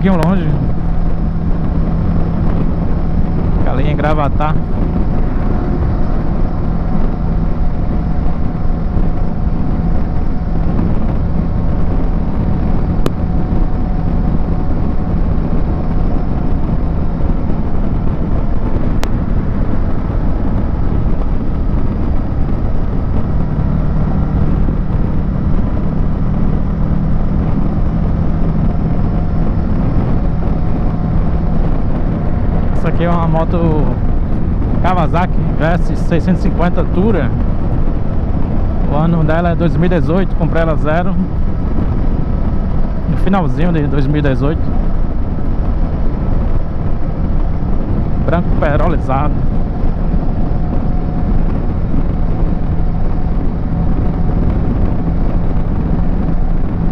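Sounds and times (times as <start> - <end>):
heavy wind rush: 0.0 - 56.9
motorcycle engine cruising: 0.0 - 56.9
road rush: 0.0 - 56.9.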